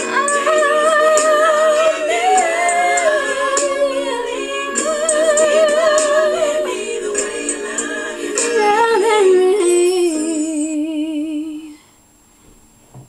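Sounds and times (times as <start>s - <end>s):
woman singing a slow ballad: 0.0s - 11.9s.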